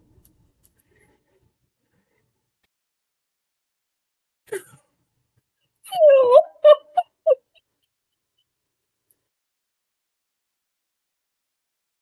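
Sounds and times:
person making wordless vocal sounds: 5.9s - 7.5s.

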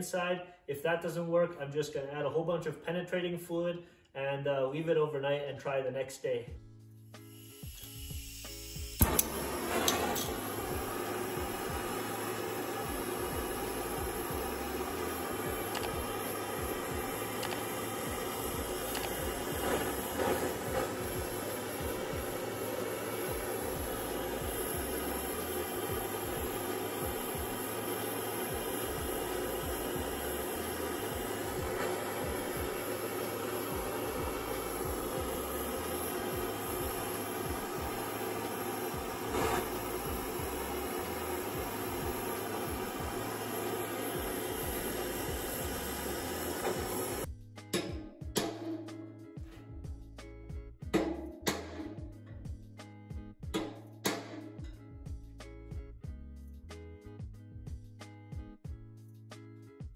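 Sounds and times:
gas torch hissing: 7.2s - 47.3s.

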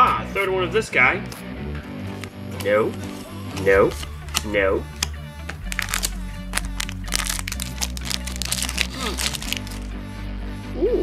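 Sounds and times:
background music with bass line: 0.0s - 11.0s
foil wrapper crinkling: 2.9s - 9.9s.

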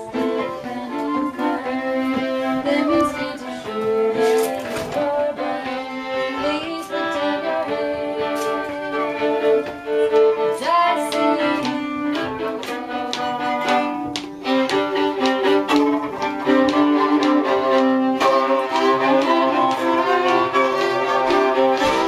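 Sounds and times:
fiddles playing a tune: 0.0s - 22.0s.

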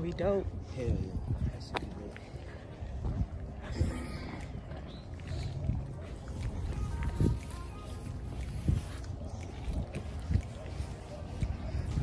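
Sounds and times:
faint background music: 0.0s - 12.0s
wind rumble on microphone: 0.0s - 12.0s.

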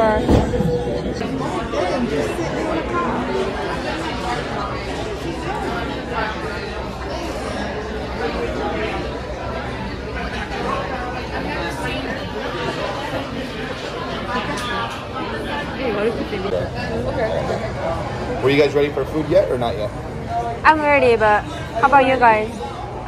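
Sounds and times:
chatter of many diners: 0.0s - 23.0s.

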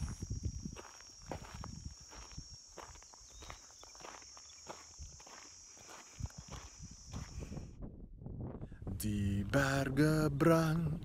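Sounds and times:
footsteps crunching on dirt: 0.0s - 7.7s.

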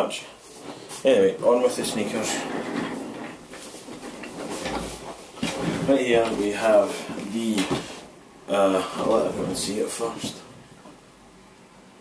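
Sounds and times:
office chair casters rolling: 0.6s - 8.1s, 8.7s - 10.4s.

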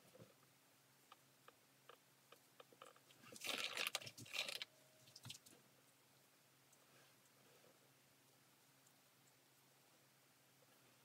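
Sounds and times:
rustling handling noise: 2.8s - 5.6s.

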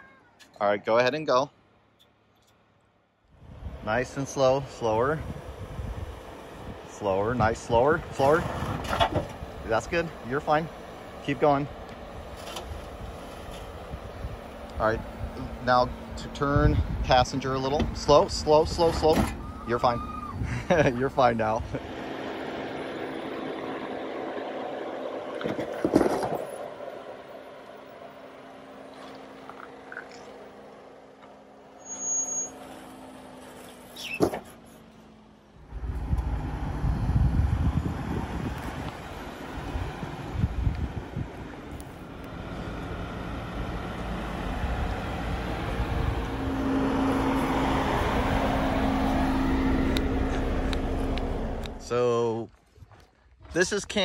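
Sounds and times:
off-road vehicle engines: 0.0s - 54.0s
low rumble: 35.6s - 53.0s.

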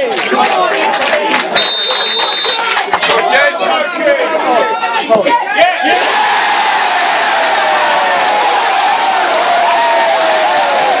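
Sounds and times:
crowd cheering: 0.0s - 11.0s
fan long falling shout: 5.8s - 11.0s.

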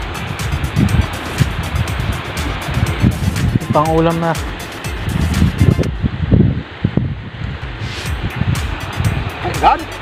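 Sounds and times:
background music: 0.0s - 6.0s, 7.7s - 10.0s
wind buffeting microphone: 0.0s - 10.0s.

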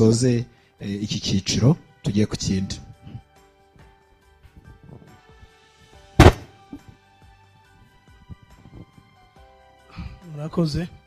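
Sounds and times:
quiet background music: 0.0s - 11.0s
loud thump: 6.2s - 6.6s.

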